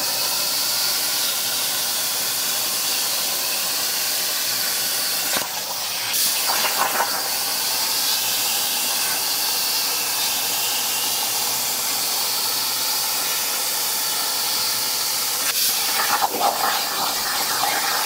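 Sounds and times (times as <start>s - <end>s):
plasma torch hissing: 0.0s - 18.0s.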